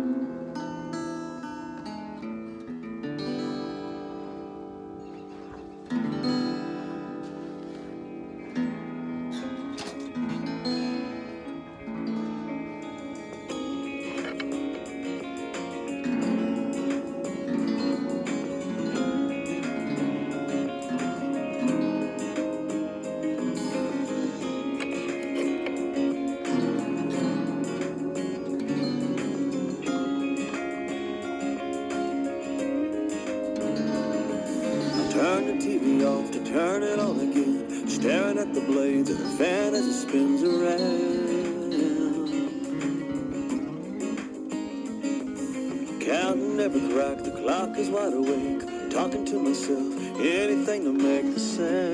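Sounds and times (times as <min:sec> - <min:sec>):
acoustic guitar: 0:00.0 - 0:51.9.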